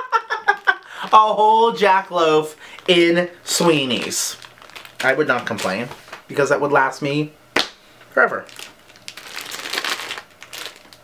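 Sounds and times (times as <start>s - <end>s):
plastic wrapping crinkling: 0.3s - 6.3s, 8.3s - 11.0s.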